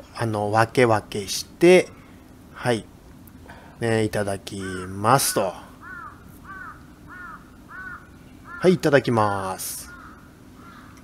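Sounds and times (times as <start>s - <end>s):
crow cawing: 4.6s - 8.9s, 9.7s - 11.0s.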